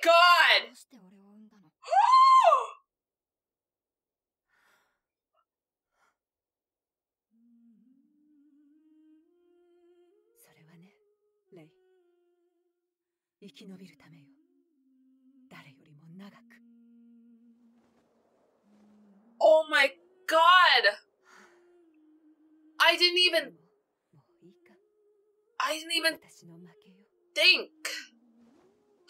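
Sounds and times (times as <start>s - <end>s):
woman's shocked exclamation: 1.8s - 2.8s
person speaking: 19.4s - 21.0s, 22.8s - 23.5s.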